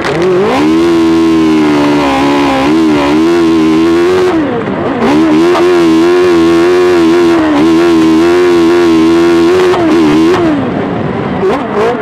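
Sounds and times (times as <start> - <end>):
racing car engine revving: 0.0 - 12.0.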